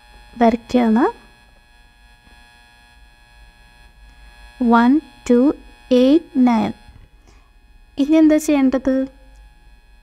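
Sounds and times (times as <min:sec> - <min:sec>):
electrical hum and buzz: 0:00.0 - 0:10.0.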